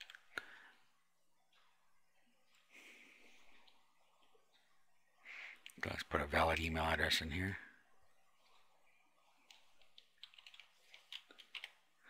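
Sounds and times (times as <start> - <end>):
typing on keyboard: 9.5 - 11.8.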